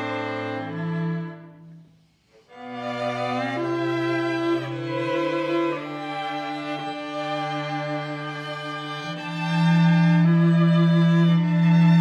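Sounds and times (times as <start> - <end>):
string quartet playing held chords: 0.0 - 12.0.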